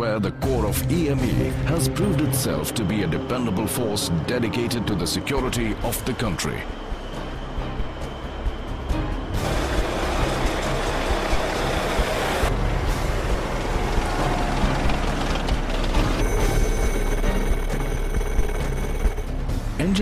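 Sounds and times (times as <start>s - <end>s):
background music: 0.0s - 20.0s
tracked vehicle engines and tracks: 0.4s - 19.8s
steady whine: 2.1s - 19.6s.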